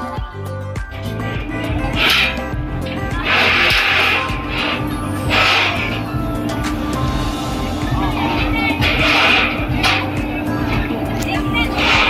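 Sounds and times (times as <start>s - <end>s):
music with steady bass line: 0.0s - 12.0s
hissy bursts: 1.4s - 12.0s.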